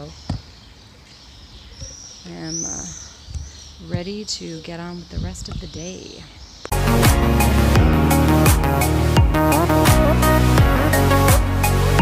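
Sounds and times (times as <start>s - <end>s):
outdoor background noise: 0.0s - 6.7s.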